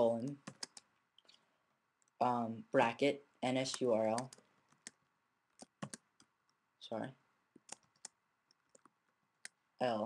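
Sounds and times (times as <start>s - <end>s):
computer keyboard keystrokes: 0.3s - 0.9s, 5.6s - 6.3s, 7.6s - 8.9s.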